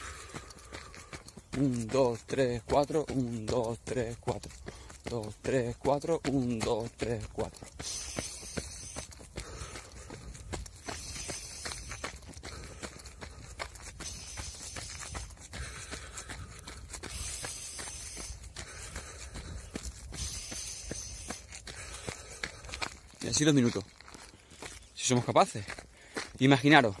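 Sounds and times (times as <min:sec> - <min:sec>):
person breathing rhythmically: 0:00.0 - 0:23.2, 0:24.1 - 0:24.9, 0:25.7 - 0:26.4
running footfalls: 0:00.0 - 0:27.0.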